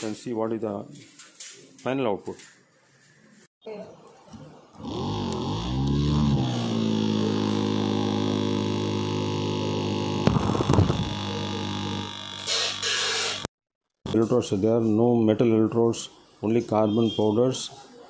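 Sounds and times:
small electric motor humming: 4.8s - 13.5s.

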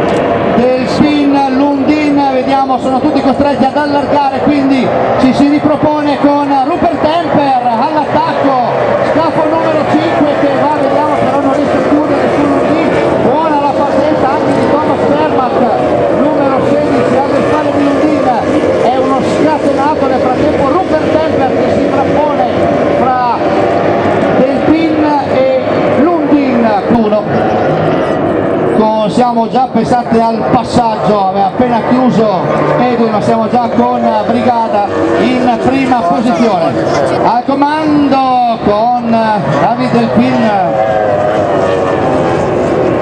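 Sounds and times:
racing powerboat engines: 0.0s - 43.0s.

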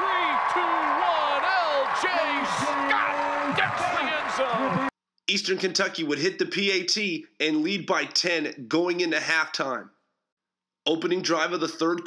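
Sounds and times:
announcer shouting excitedly: 0.0s - 4.9s
stadium crowd cheering: 0.0s - 4.9s.

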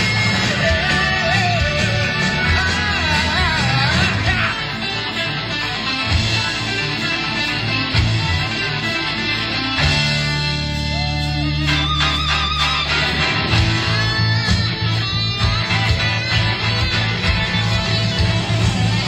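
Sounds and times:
electric guitar: 0.0s - 19.0s
live hard rock band playing: 0.0s - 19.0s.

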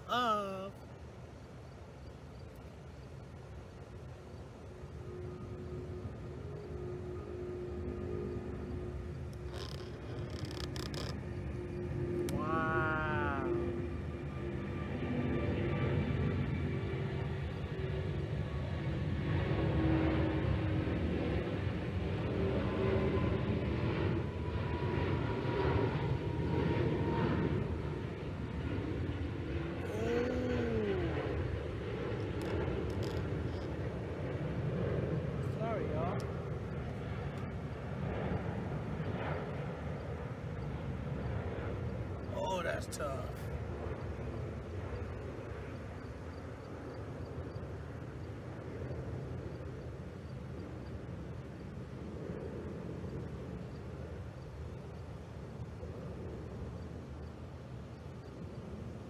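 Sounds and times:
jet engine rumble: 0.0s - 59.0s.

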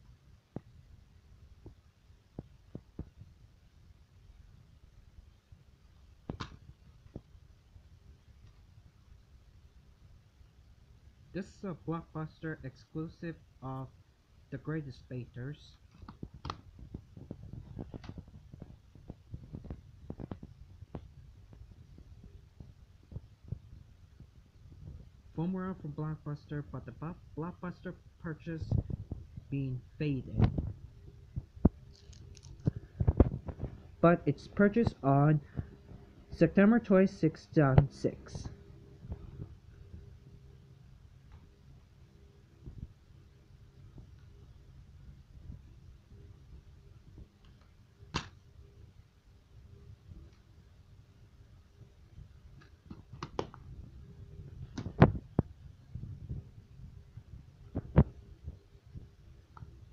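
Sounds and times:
faint steady hum: 0.0s - 59.9s
rustling handling noise: 31.4s - 34.0s.

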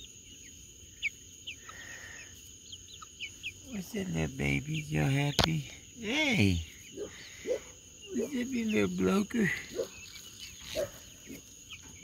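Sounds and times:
chicks peeping: 0.0s - 12.0s.

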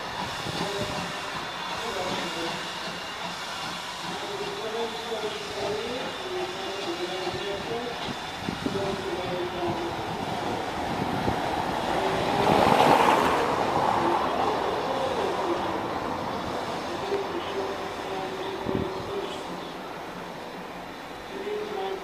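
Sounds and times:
rumble of train wheels: 0.0s - 22.0s
steam train pulling away: 0.0s - 22.0s.

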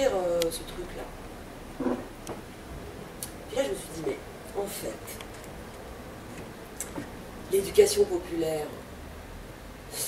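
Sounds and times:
faint mouth clicks: 6.8s - 7.0s.

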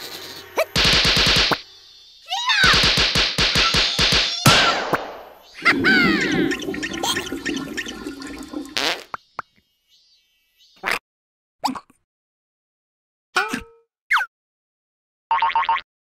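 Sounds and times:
cartoon hits and smack: 2.7s - 5.4s.

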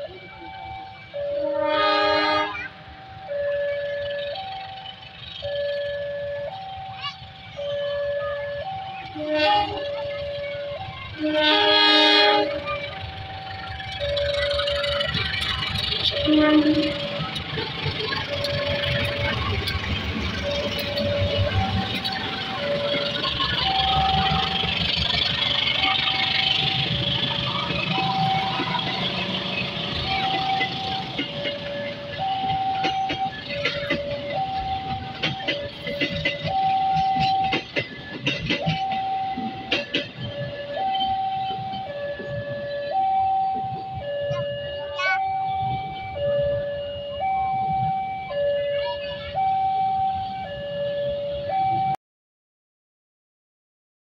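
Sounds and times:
train rumbling past: 0.0s - 51.9s
wheels clicking over rail joints: 3.8s - 44.7s.

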